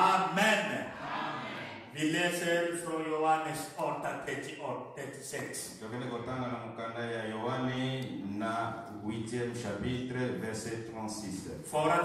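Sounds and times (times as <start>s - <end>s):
man reading in chant-like cadence: 0.0s - 1.0s, 1.8s - 12.0s.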